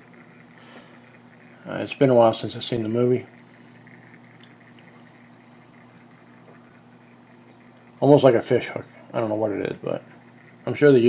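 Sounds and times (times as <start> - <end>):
low electrical hum: 0.0 - 11.0
faint ticks: 3.3 - 8.0.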